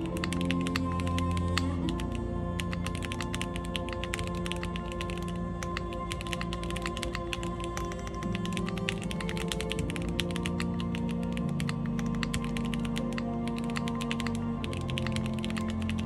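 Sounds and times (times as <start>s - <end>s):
mechanical keyboard typing: 0.0s - 16.0s
soft background music: 0.0s - 16.0s.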